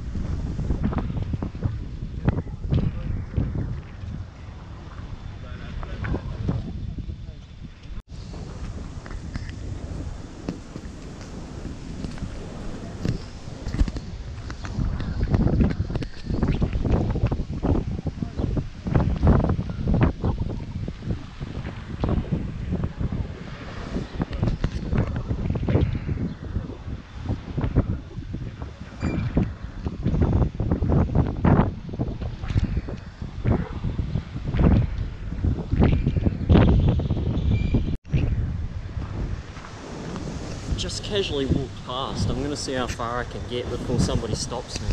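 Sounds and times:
storm wind buffeting microphone: 0.0s - 44.9s.

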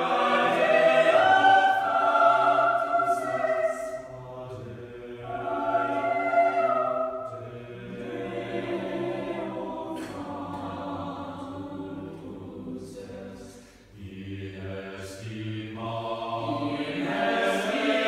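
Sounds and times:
choir singing held chords: 0.0s - 18.0s.

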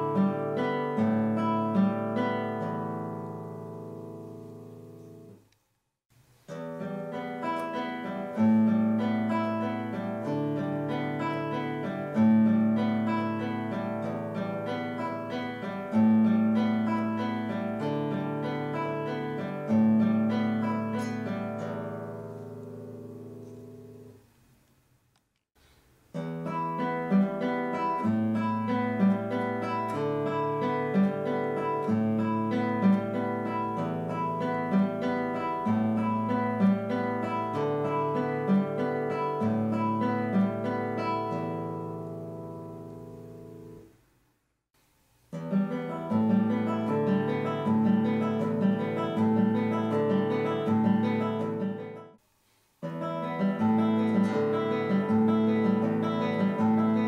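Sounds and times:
fingerpicked nylon-string guitar: 0.0s - 5.5s, 6.3s - 24.4s, 25.6s - 44.0s, 45.3s - 52.2s, 52.8s - 57.0s.

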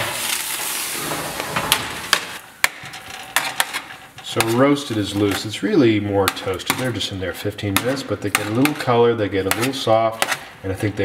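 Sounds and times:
sheet pan sizzling: 0.0s - 10.6s.

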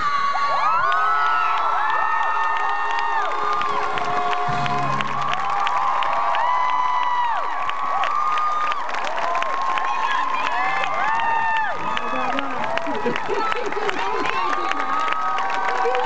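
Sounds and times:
crowd cheering: 0.0s - 16.0s
high screams and whoops: 0.0s - 16.0s
clapping: 0.6s - 16.0s.

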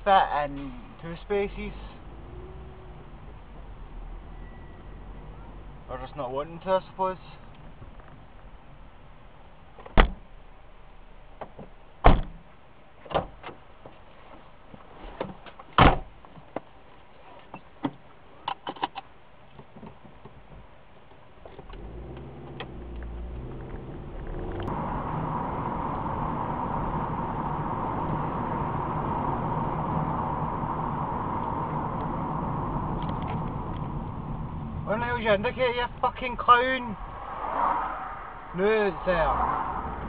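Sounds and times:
car engine running: 21.6s - 37.5s.

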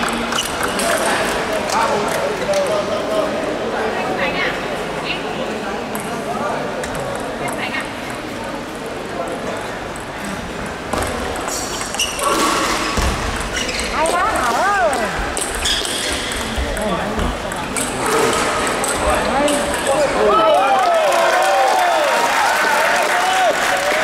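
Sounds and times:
voices chattering: 0.0s - 20.8s.

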